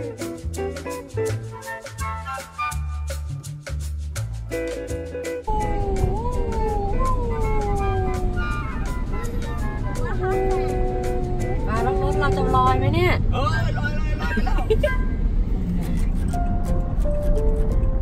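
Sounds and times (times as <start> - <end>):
high voices exclaiming in amazement: 5.5 - 13.0
steady low rumble: 5.5 - 18.0.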